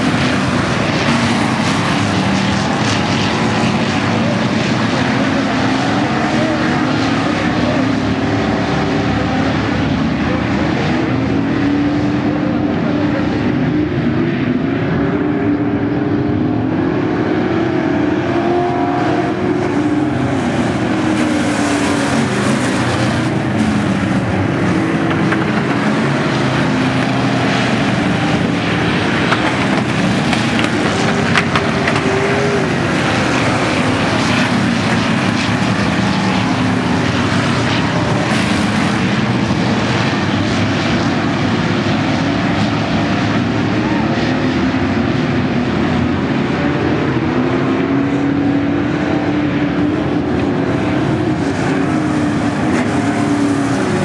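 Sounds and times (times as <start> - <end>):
race car engines roaring: 0.0 - 54.0.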